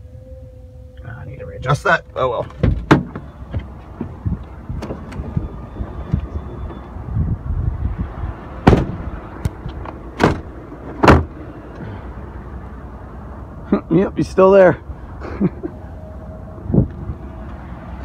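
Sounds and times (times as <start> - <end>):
sharp clunks: 2.5 - 4.2.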